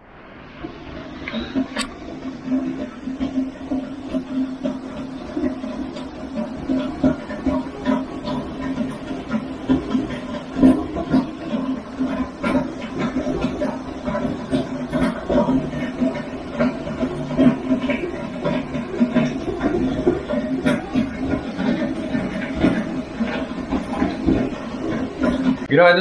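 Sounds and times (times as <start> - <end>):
heavy rain: 0.2 - 25.7.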